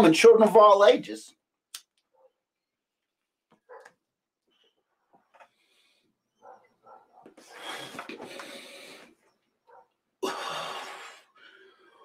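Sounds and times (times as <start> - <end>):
person inhaling through a pipe: 7.5 - 9.2.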